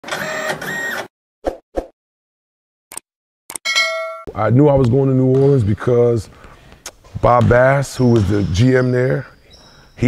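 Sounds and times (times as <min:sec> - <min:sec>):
bright ringing ding: 0:03.7 - 0:04.3.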